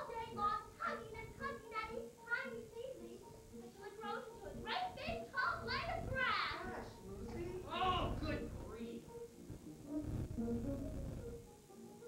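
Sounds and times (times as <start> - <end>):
young voices talking: 0.0 - 9.0.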